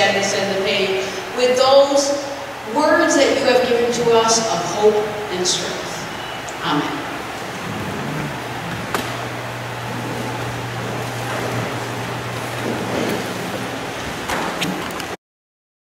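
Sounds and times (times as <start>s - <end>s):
steady background hiss: 0.0s - 15.2s
low hum: 6.0s - 14.8s.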